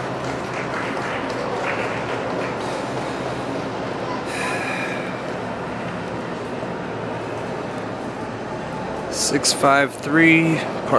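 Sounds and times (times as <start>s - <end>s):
indoor arena background noise: 0.0s - 10.9s.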